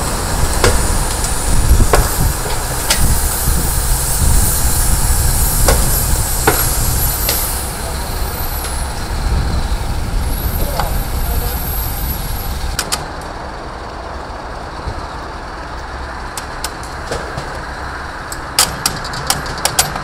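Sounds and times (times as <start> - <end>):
truck diesel engine idling: 0.0 - 19.6.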